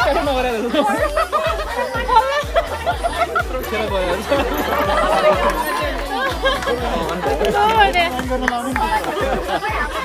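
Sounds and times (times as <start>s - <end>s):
background music with beat: 0.0s - 10.0s
people talking over each other: 0.0s - 10.0s.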